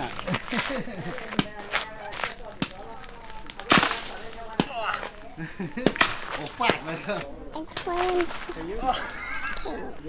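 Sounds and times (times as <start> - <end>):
faint laughter: 0.0 - 1.2, 8.8 - 10.0
rustling crack in palm top: 0.0 - 9.7.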